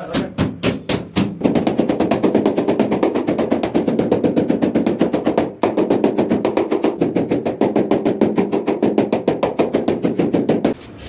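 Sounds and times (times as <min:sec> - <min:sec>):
rubber mallet tapping tile: 0:00.0 - 0:10.8.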